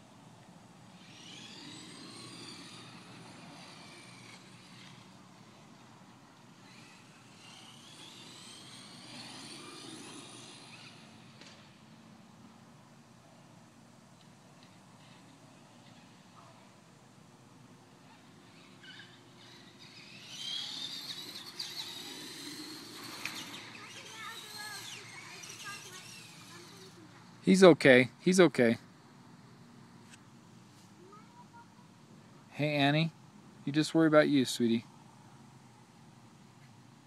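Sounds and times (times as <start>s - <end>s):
electric motors whining: 0.6s - 12.0s, 17.8s - 27.2s.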